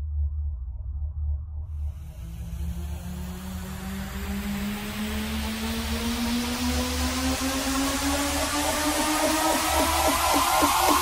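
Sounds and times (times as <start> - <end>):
pulsing sub-bass: 0.0 - 11.0
rising synth tone: 1.1 - 11.0
noise sweep: 1.7 - 11.0.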